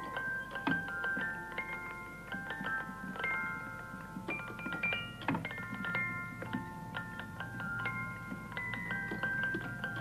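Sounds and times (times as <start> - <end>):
music box tune: 0.0 - 10.0.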